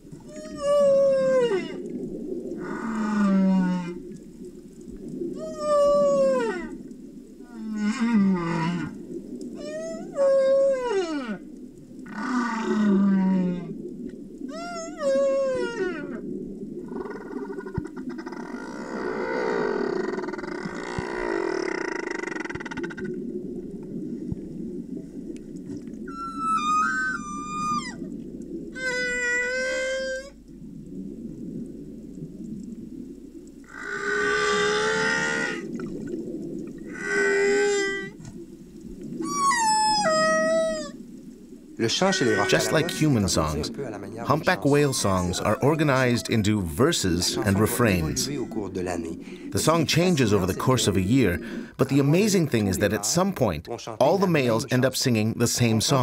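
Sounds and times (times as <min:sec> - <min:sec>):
low underwater rumble: 0:00.0 - 0:52.9
humpback whale song: 0:00.0 - 0:56.0.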